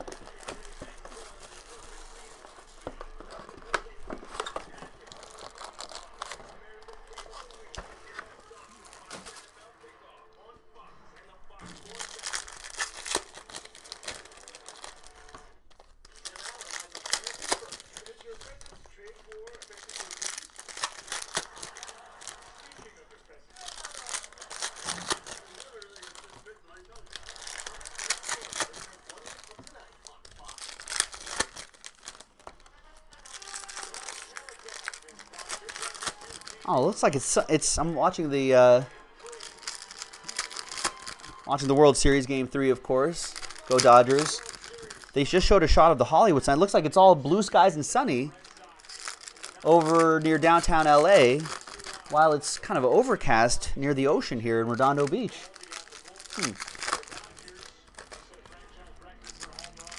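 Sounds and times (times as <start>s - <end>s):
foil wrappers tearing and crinkling: 0.0s - 9.7s, 11.5s - 59.9s.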